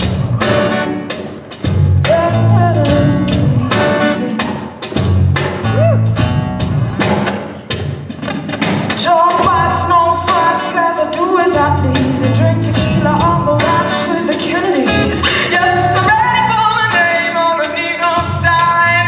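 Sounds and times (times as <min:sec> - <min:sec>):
bass guitar: 0:00.0 - 0:10.7, 0:11.3 - 0:19.0
steady beat: 0:00.0 - 0:16.4
woman singing: 0:02.0 - 0:04.8, 0:08.9 - 0:19.0.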